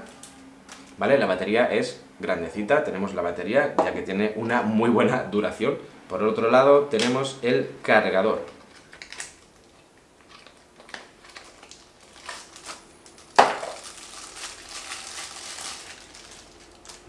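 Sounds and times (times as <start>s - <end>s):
plastic wrapping crinkling: 8.6s - 17.0s.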